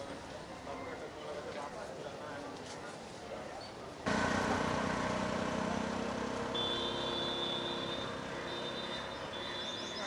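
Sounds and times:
vehicle engine running: 4.1s - 9.6s.

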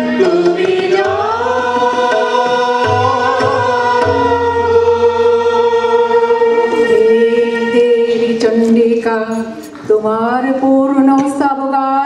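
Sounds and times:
group singing in unison: 0.0s - 9.0s.

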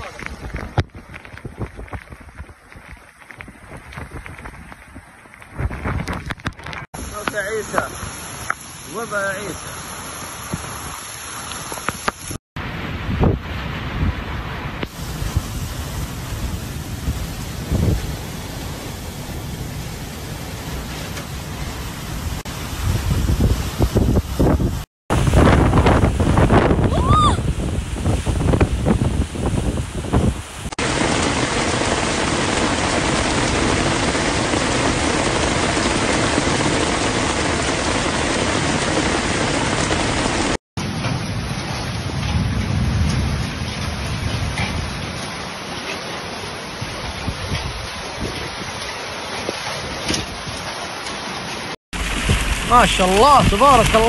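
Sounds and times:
wind buffeting microphone: 0.0s - 6.9s, 12.6s - 19.5s, 21.5s - 40.5s, 46.7s - 50.8s
heavy rain falling: 0.0s - 54.0s.

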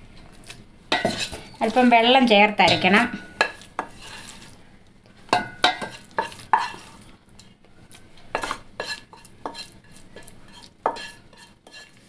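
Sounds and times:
spatula scraping and tapping a pan: 0.3s - 7.1s, 8.0s - 12.0s.

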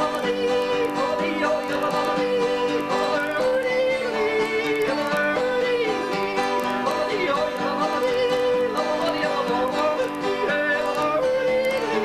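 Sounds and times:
acoustic guitars strumming chords: 0.0s - 12.0s
bending guitar melody: 0.0s - 12.0s.

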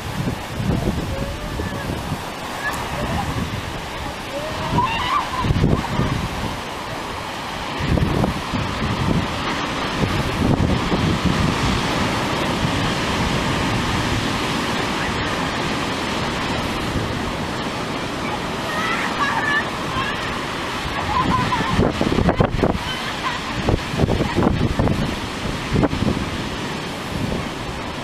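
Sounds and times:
sea surf breaking: 0.0s - 28.0s
wind buffeting microphone: 0.0s - 28.0s.

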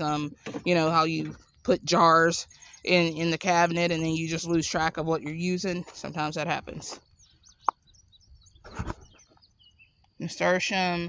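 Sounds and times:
faint songbirds chirping: 0.0s - 11.0s.

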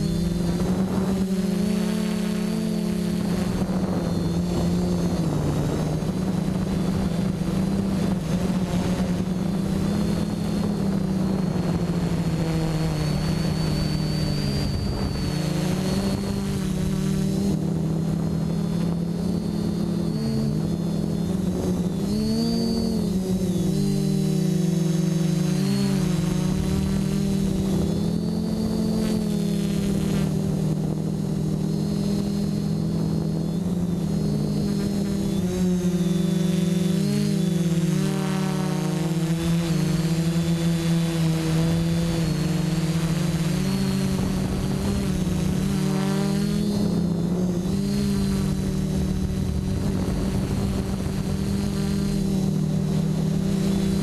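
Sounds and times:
quadcopter motors whining: 0.0s - 54.0s.

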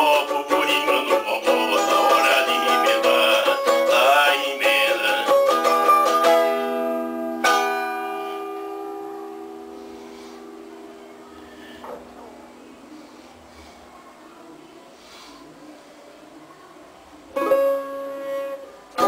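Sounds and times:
small plucked string instrument strummed: 0.0s - 11.4s, 17.4s - 19.0s.

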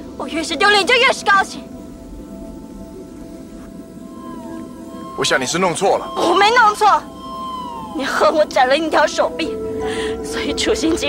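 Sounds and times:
soft dramatic background score: 0.0s - 11.0s.

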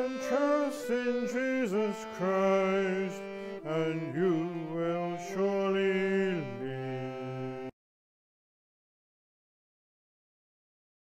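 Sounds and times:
person singing: 0.0s - 7.8s.

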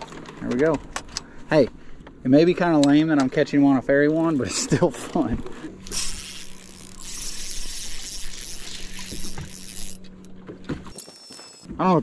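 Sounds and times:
trolling motor humming: 5.4s - 11.0s
wind and water hiss: 5.9s - 10.0s.

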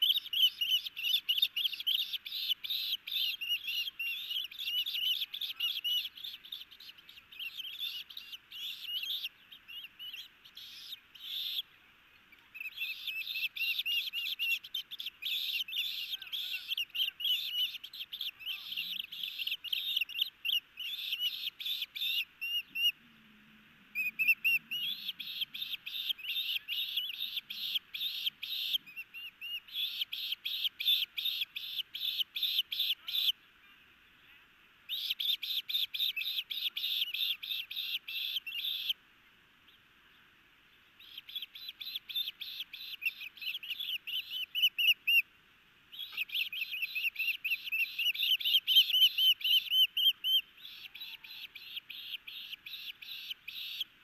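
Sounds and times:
osprey high chirps: 0.0s - 11.7s, 12.3s - 23.0s, 23.9s - 33.4s, 34.9s - 39.0s, 41.0s - 45.2s, 45.9s - 53.9s.

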